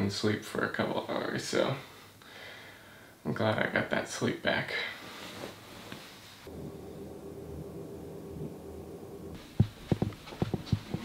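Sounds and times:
footsteps on wooden floor: 9.4 - 11.0.

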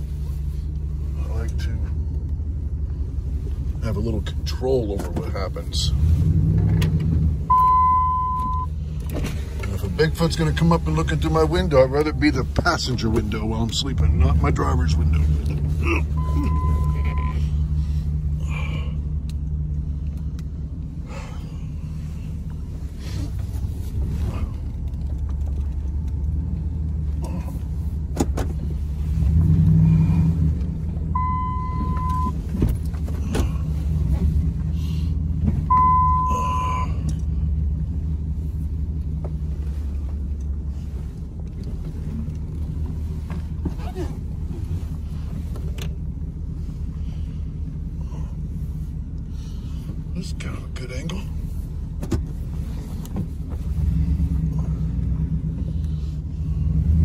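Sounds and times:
truck engine idling: 0.0 - 57.0
single-tone electronic beep: 7.5 - 8.7, 16.2 - 17.4, 31.2 - 32.4, 35.7 - 36.4.

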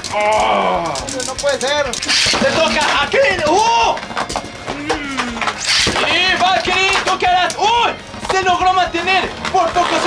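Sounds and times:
spinning tops clattering: 0.0 - 4.6.

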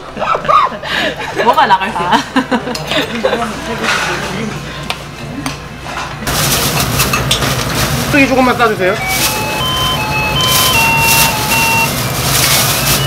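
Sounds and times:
loud busy noise: 6.0 - 13.0.

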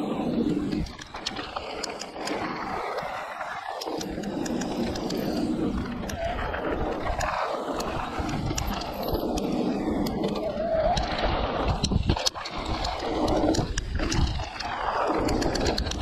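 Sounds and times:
bike rattling over bumps: 0.0 - 16.0
tyres rolling on dirt trail: 0.0 - 16.0
wind on microphone: 4.0 - 16.0.

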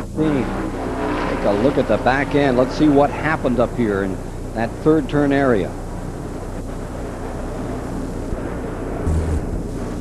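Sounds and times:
race car engines at speed: 0.0 - 10.0.

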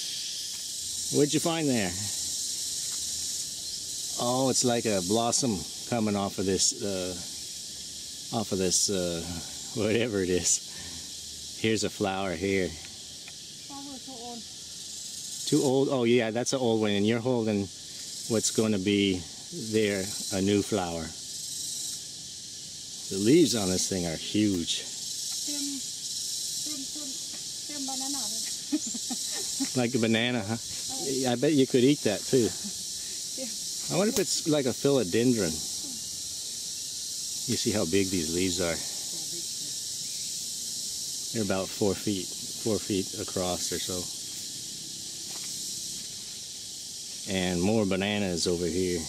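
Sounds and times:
insects buzzing: 0.0 - 49.0.

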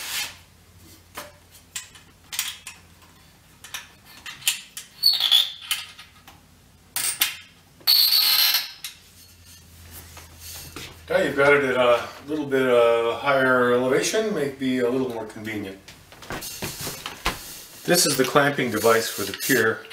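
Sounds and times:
metal tubes rubbing and scraping: 7.9 - 11.3, 17.4 - 19.9.

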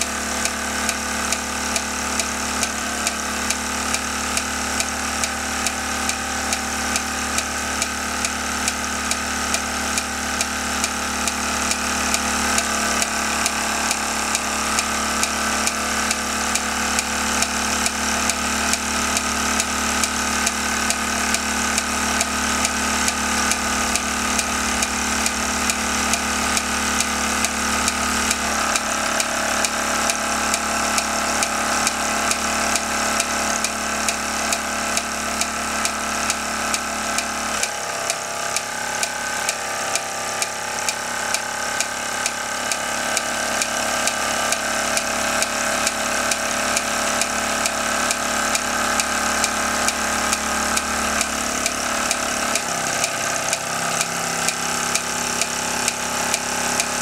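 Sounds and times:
regular mechanical ticking: 0.0 - 57.0
toy steam engine whirring: 0.0 - 57.0.

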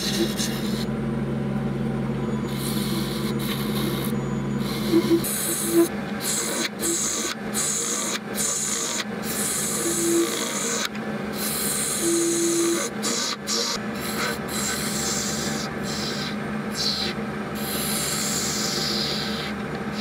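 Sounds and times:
lathe humming: 0.0 - 20.0.

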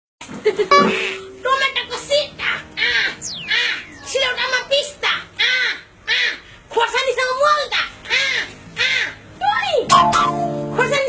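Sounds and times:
falling whistle: 3.1 - 4.7.

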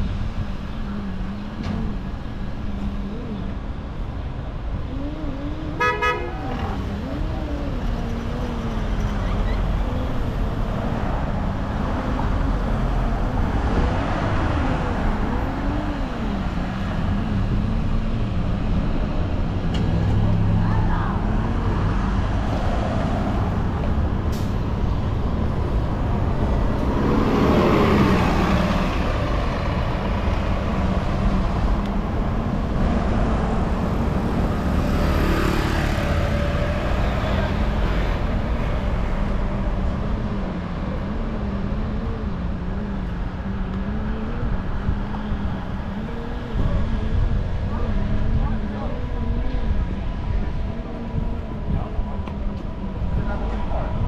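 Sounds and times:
bus engine passing: 0.0 - 54.0
cars idling and passing: 0.0 - 54.0.

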